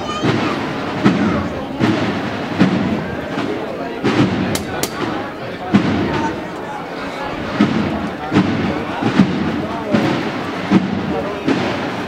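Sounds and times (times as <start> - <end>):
crowd murmur: 0.0 - 12.0
drum beating marching cadence: 0.0 - 12.0.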